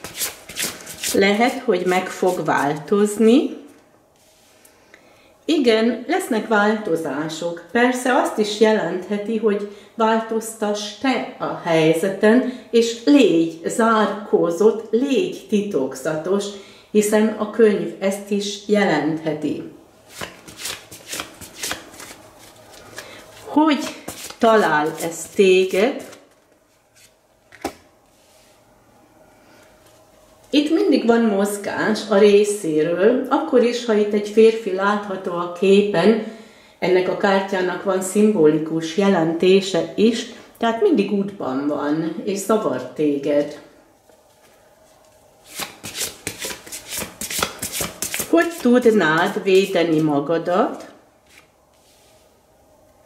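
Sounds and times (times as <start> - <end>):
cards being shuffled: 0.0 - 1.2, 20.1 - 27.8, 45.5 - 49.3, 51.2 - 51.5.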